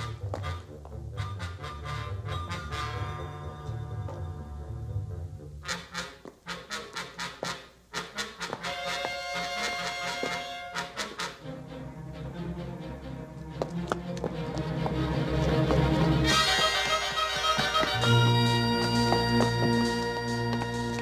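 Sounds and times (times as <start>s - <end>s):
tense orchestral music with brass: 0.0s - 21.0s.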